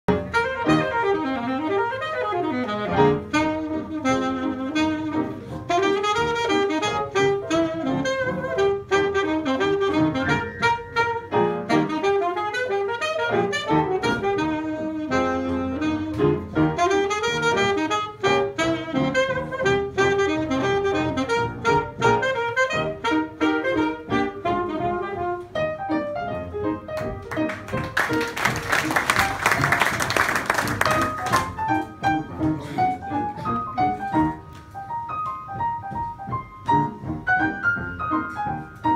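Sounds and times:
jazz piano: 0.1s - 38.9s
saxophone melody: 0.1s - 38.9s.

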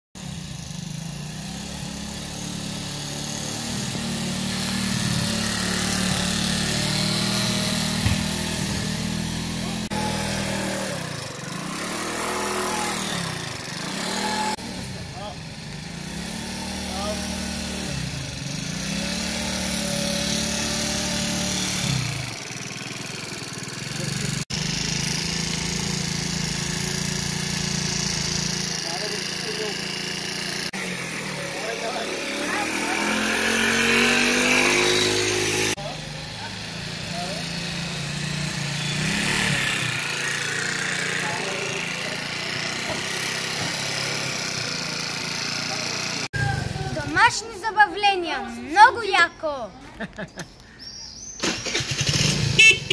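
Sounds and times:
moped engine revving: 0.2s - 52.9s.

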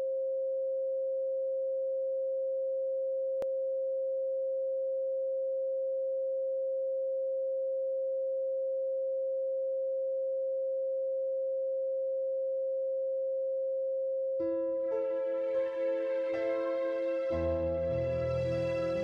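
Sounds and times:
steady sine tone: 0.0s - 19.0s.

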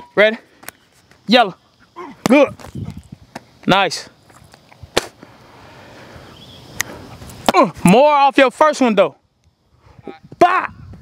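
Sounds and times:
faint outdoor background: 0.0s - 11.0s
sharp snap: 4.8s - 5.2s.

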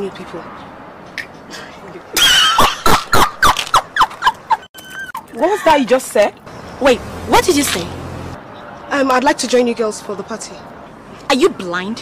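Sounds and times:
woman laughing loudly: 1.9s - 4.7s.

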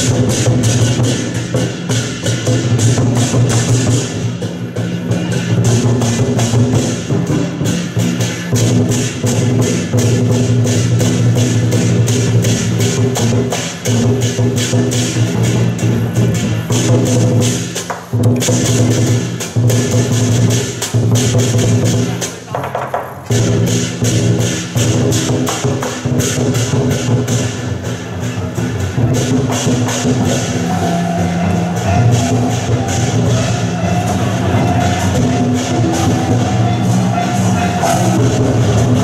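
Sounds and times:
cymbals crashing: 0.0s - 22.5s, 23.3s - 39.0s
drum-driven procession music: 0.0s - 39.0s.

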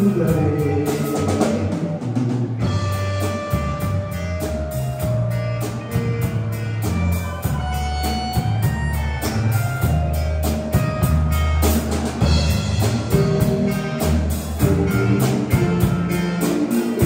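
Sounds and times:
drum kit beat: 0.0s - 17.0s
held keyboard chords: 0.0s - 17.0s
low bass notes: 0.0s - 17.0s.

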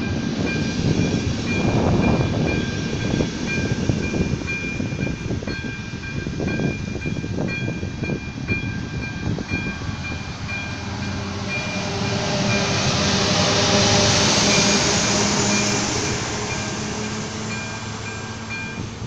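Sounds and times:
crossing warning bell dinging: 0.0s - 19.0s
diesel locomotive engine: 0.0s - 19.0s.

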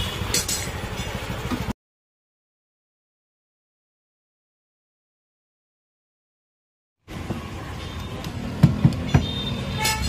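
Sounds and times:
steady background noise: 0.0s - 1.8s, 7.0s - 10.0s
sharp knocks: 8.6s - 10.0s
car horn toot: 9.1s - 10.0s.

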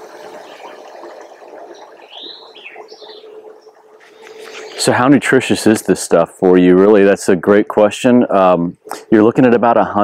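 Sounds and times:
bird call: 2.0s - 3.4s.

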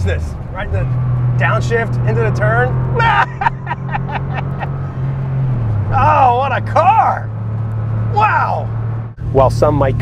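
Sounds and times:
car engine running at steady revs: 0.0s - 10.0s.

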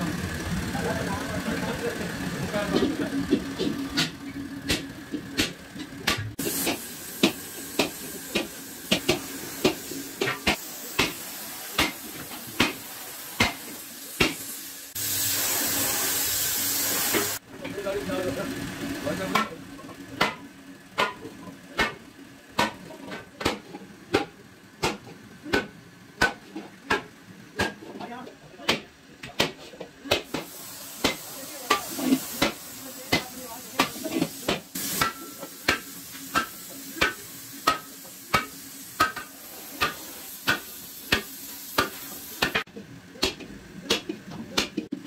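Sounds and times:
steady hiss: 6.4s - 17.4s, 30.3s - 42.6s.

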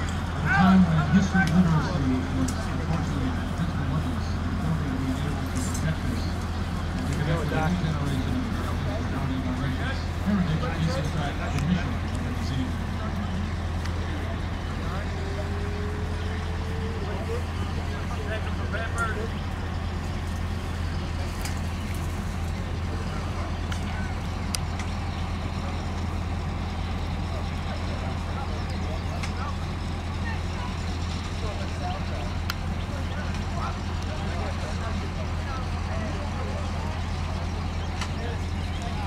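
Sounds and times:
heavy vehicle engine idling: 0.0s - 39.0s
men talking: 0.0s - 39.0s.

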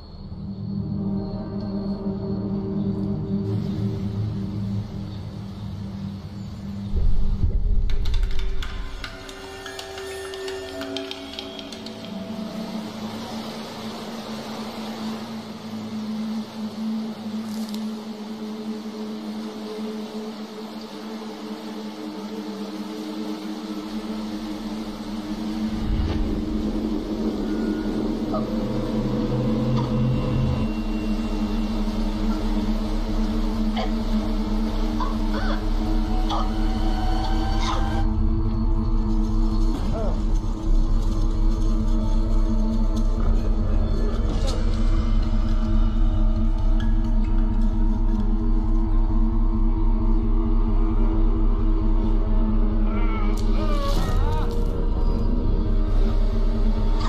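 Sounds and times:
suspenseful horror film score: 0.0s - 57.0s.

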